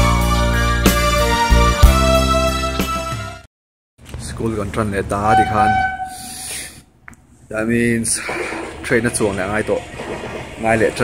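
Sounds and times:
man speaking: 4.3 - 6.6
train horn: 5.3 - 6.3.

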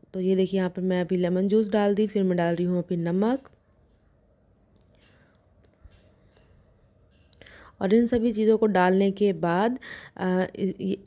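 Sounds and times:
woman speaking: 0.0 - 3.6, 7.8 - 11.0
intake of breath: 9.8 - 10.2.

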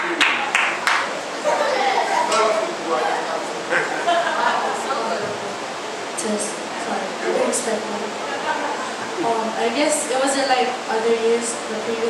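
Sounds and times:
room noise and pa hiss: 0.0 - 12.0.

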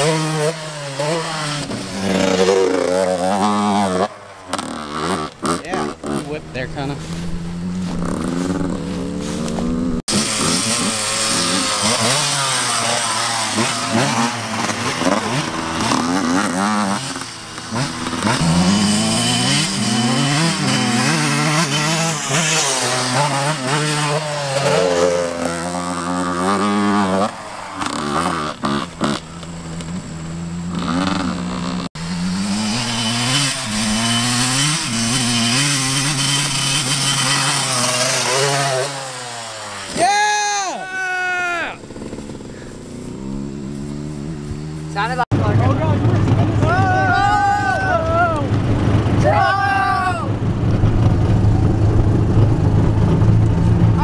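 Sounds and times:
dirt bike engines revving: 0.0 - 54.0.

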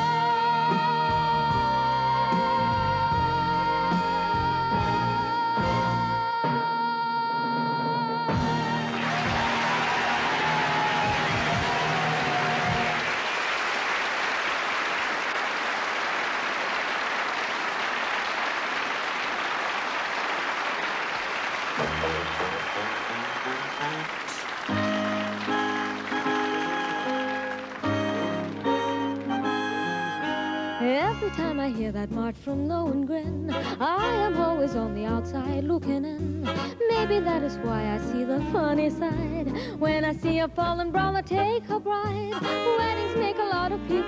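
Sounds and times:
dance band playing: 8.4 - 13.7, 21.2 - 31.6
studio audience applause: 8.5 - 30.8
orchestra holding a chord: 21.8 - 30.8.

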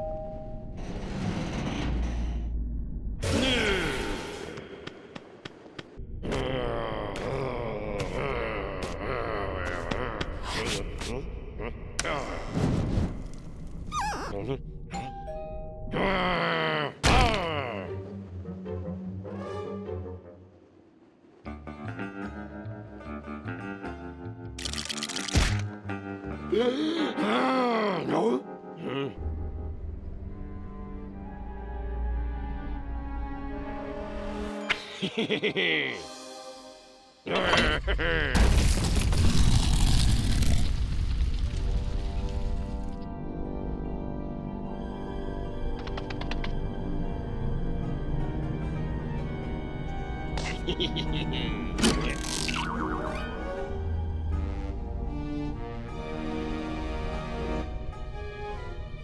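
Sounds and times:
cartoon groan: 3.2 - 4.2, 6.2 - 12.6, 13.9 - 15.1, 15.9 - 17.9, 26.5 - 29.2, 37.3 - 38.5, 50.4 - 53.2
cartoon score music: 49.0 - 57.7.

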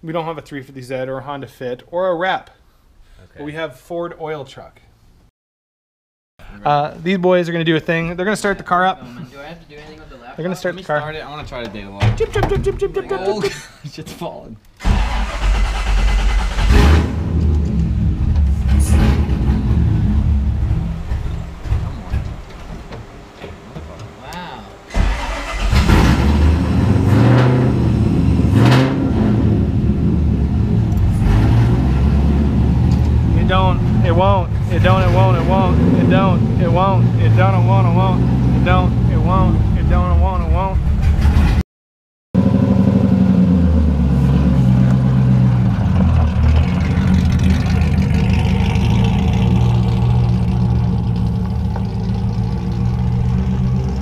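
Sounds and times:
car engine cranking and starting: 14.7 - 36.6, 42.4 - 54.0
engine throttle blips: 14.8 - 41.6, 42.4 - 54.0
car engine idling unevenly: 19.8 - 25.6, 43.8 - 54.0.

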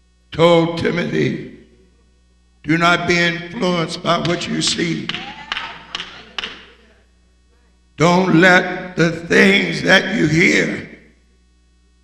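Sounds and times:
man's voice echoing in a hall: 0.3 - 1.9, 2.6 - 5.9, 8.0 - 11.2.

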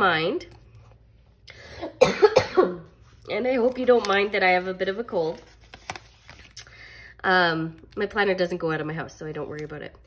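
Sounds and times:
woman coughing: 1.8 - 2.9.

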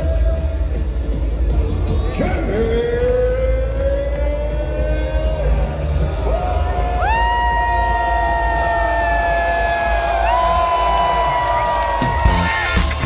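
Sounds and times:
loud electronic music: 0.0 - 13.0
crowd cheering: 3.7 - 13.0.

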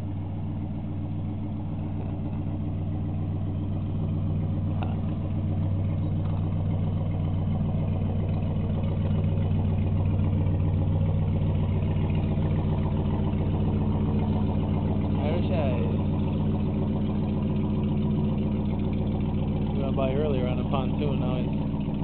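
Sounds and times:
boat engine running: 0.0 - 22.0.

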